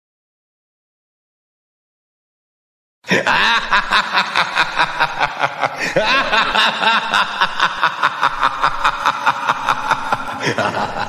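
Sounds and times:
person laughing: 3.1 - 11.0.

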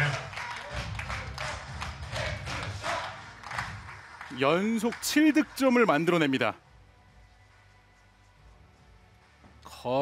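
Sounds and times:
scattered clapping: 0.0 - 6.4.

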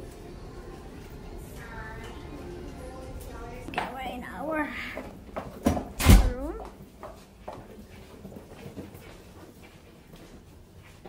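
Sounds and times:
door closing with thud: 5.7 - 6.6.

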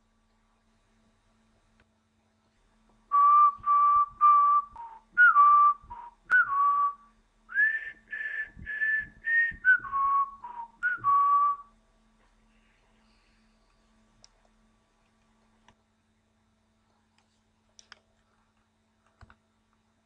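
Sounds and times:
person whistling a tune: 3.1 - 11.7.

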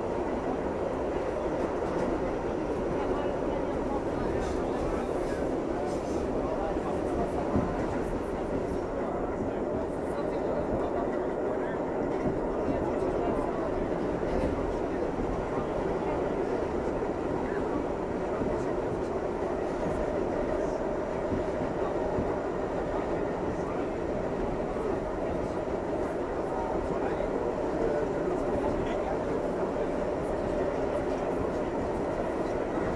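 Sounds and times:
subway train rumbling in tunnel: 0.0 - 32.9.

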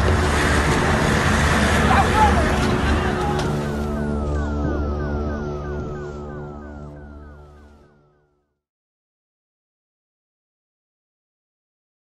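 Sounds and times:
steady noisy rumble: 0.0 - 5.4
falling electronic tones: 0.0 - 8.4
men's raised voices: 1.8 - 3.7.

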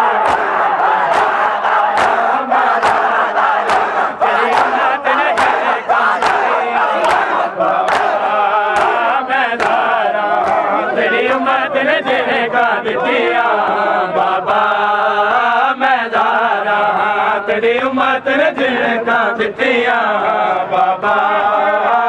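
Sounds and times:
men chanting in unison: 0.0 - 22.0
hands slapping bare chests: 0.1 - 10.7.

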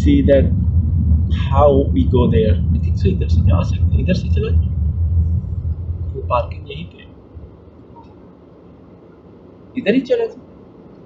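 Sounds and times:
car engine and road rumble: 0.0 - 11.0
person talking: 1.4 - 4.6, 6.2 - 7.1.

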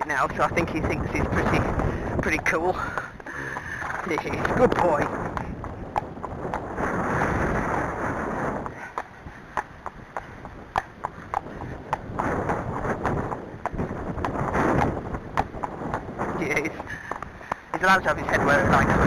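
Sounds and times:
horse hoofbeats on hard track: 0.0 - 19.0
wind rumble on microphone: 0.0 - 19.0.

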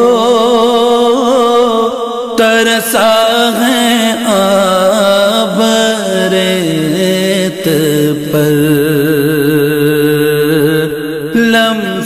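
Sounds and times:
man singing devotional lament: 0.0 - 12.0.

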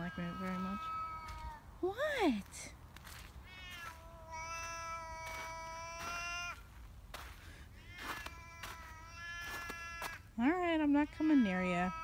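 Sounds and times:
cat yowling: 0.0 - 1.6, 3.4 - 6.6, 7.8 - 10.2, 11.2 - 12.0.

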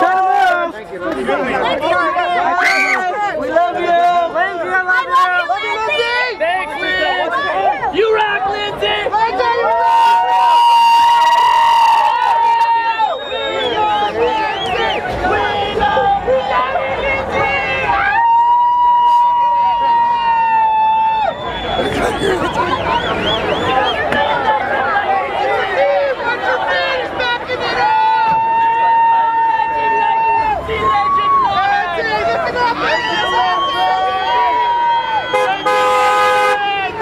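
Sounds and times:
crowd shouting: 0.0 - 37.0
car horn honking: 35.2 - 36.7.

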